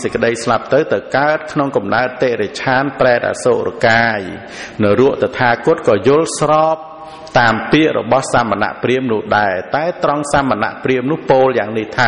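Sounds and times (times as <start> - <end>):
man preaching in sing-song: 0.0 - 12.0.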